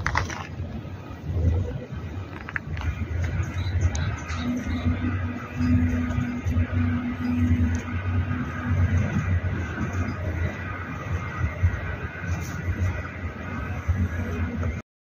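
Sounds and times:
wind rumbling on microphone: 0.0 - 14.8
low steady tone: 2.9 - 14.8.

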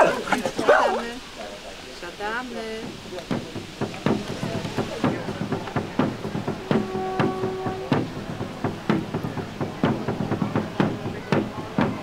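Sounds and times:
sharp knocks: 2.8 - 12.0.

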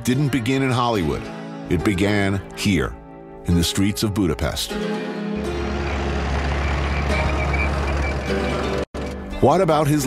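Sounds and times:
vehicle engines rumbling: 5.4 - 9.2.

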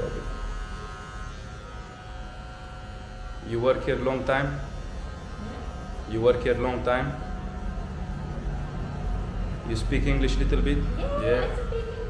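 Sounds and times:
electric hair clippers humming: 0.0 - 12.0.

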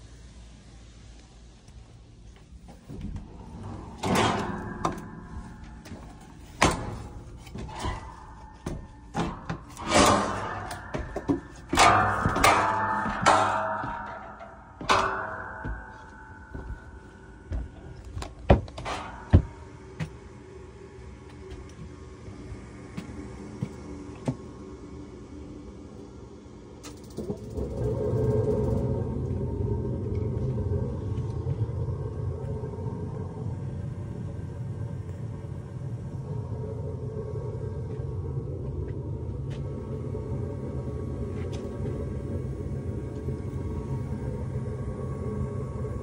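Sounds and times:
knocks and bangs: 3.0 - 20.2.

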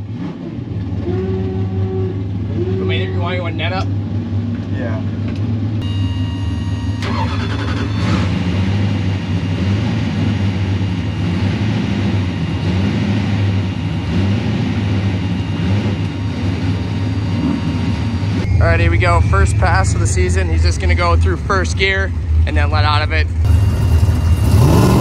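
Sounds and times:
car engine idling: 0.0 - 25.0.

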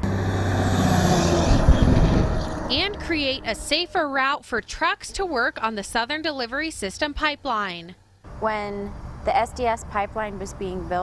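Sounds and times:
vehicle driving past on gravel: 0.0 - 3.8.

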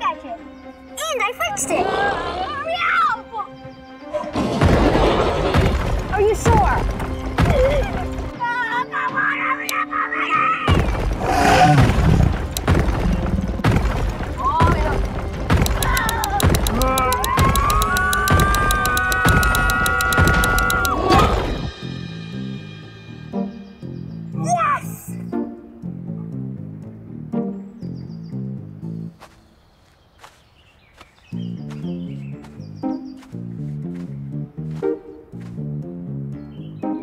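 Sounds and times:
background music with beat: 15.5 - 24.0.

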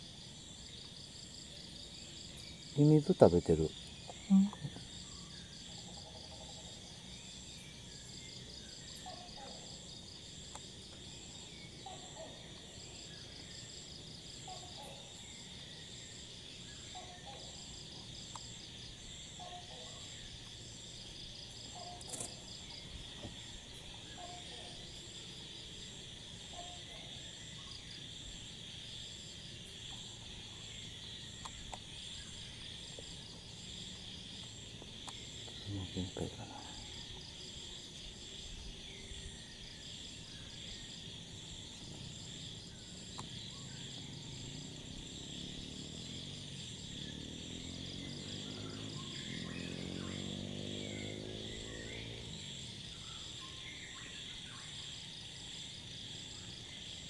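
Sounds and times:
insects trilling: 0.0 - 57.0.

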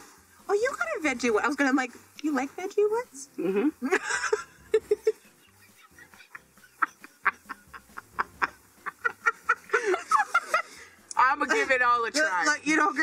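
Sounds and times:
suppressed laughter while chewing: 3.8 - 10.8.

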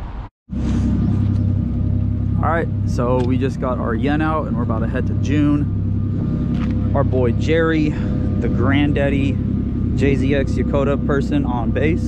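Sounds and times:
car engine idling: 0.6 - 12.0.

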